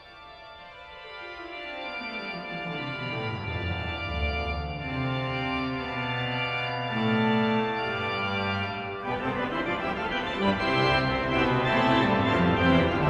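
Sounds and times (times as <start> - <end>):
pipe organ chords: 0.0 - 13.0.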